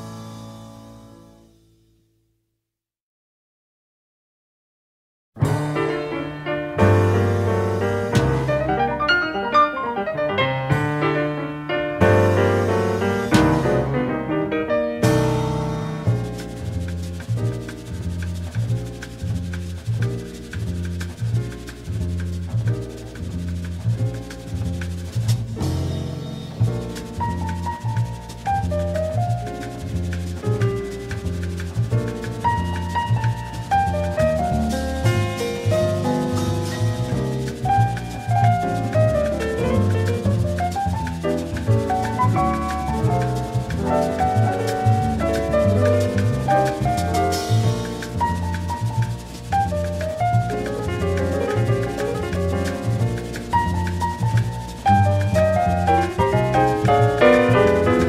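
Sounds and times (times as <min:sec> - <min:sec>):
piano melody: 0:05.4 - 0:58.0
walking bass notes: 0:05.4 - 0:58.0
soft swishing drum rhythm: 0:07.0 - 0:09.2, 0:15.0 - 0:58.0.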